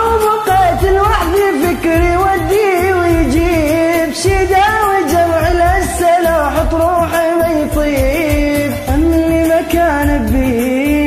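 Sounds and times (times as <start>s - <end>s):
karaoke backing track with bass beat: 0.0s - 11.0s
man singing ornamented melody: 0.0s - 11.0s.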